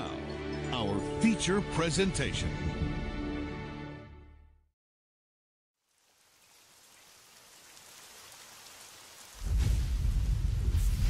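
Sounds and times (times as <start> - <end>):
soft hiss: 5.8 - 11.0.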